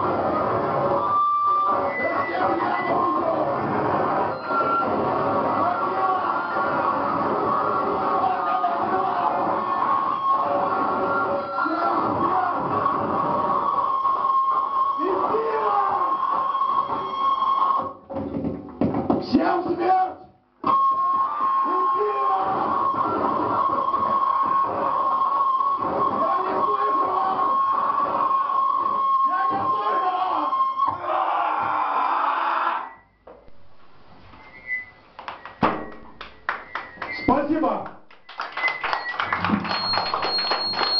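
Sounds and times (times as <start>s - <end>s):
harsh noise music: 0.0s - 18.0s, 20.6s - 32.0s.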